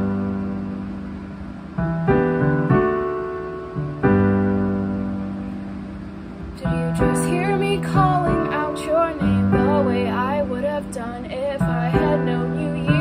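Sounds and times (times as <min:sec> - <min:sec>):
piano chords ringing: 0:00.0 - 0:13.0.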